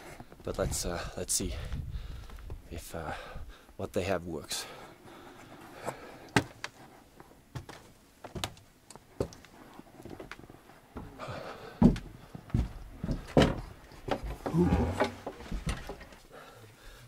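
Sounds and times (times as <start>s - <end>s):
footsteps on wooden boards: 5.4s - 16.9s
indistinct voices: 14.4s - 15.3s.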